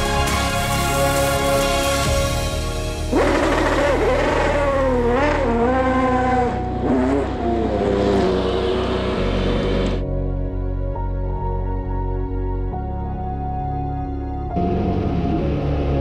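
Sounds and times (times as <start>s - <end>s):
background music with steady beat: 0.0s - 16.0s
race car engine revving: 3.0s - 10.0s.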